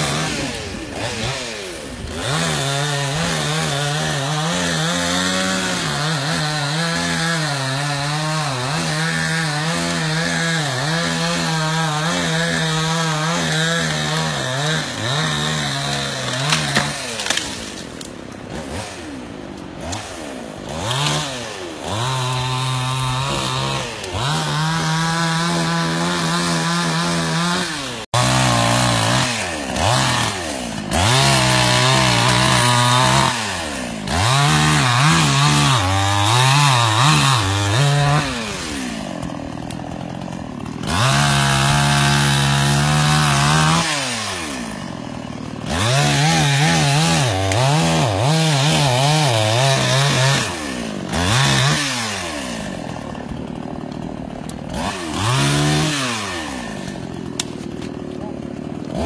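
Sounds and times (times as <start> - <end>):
chainsaw cutting and revving: 0.0 - 59.0.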